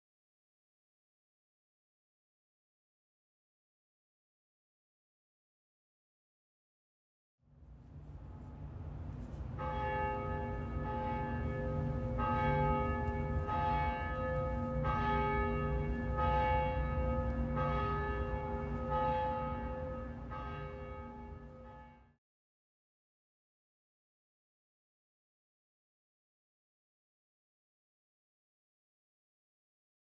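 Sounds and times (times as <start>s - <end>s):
low steady rumble: 7.5s - 16.3s
large church bell ringing: 9.6s - 22.2s.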